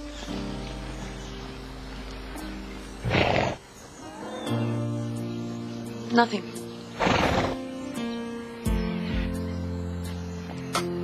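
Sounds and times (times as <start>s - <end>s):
soft background music: 0.0s - 11.0s
horse snorting: 3.0s - 4.5s, 6.9s - 7.7s.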